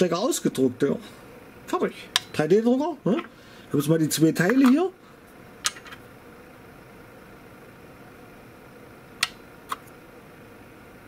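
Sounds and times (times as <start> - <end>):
cooling fan whirring: 0.0 - 11.0.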